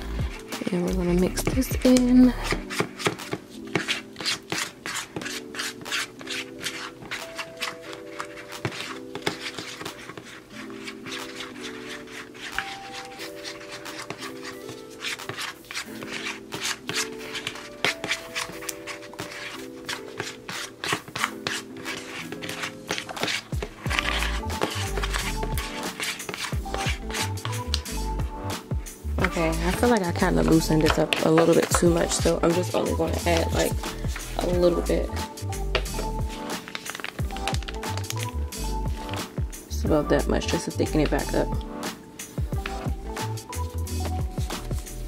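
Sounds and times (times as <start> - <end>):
background music with bass beat: 0.0 - 2.2, 26.6 - 30.9, 33.1 - 36.6, 37.2 - 40.2, 41.1 - 45.0
scraping clicking stirring strokes: 1.8 - 34.6, 35.7 - 39.4.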